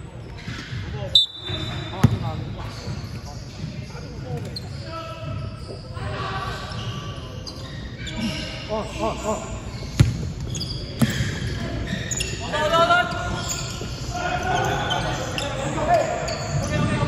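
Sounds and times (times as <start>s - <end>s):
players chatting: 0.9s - 17.0s
basketball bouncing on wooden floor: 2.0s - 2.2s.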